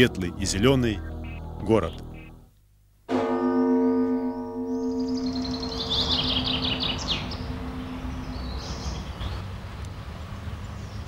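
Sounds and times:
birds singing high trills: 1.0s - 2.4s, 4.7s - 9.5s
bell-like chime ringing: 3.1s - 9.0s.

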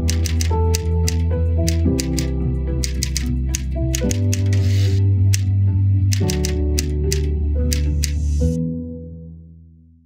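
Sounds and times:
typewriter keys clacking: 0.0s - 5.0s, 6.1s - 8.2s.

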